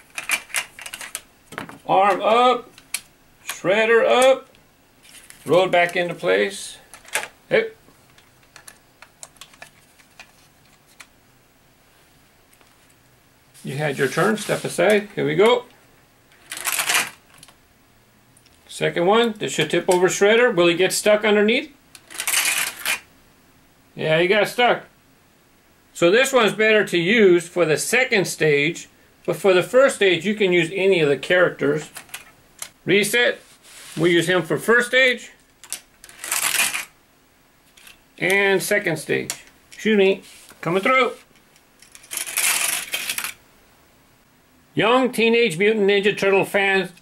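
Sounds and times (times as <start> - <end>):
plastic figure clattering: 0.0 - 2.2, 41.8 - 43.4
toy car rattling on plastic track: 36.0 - 36.9, 41.9 - 43.4.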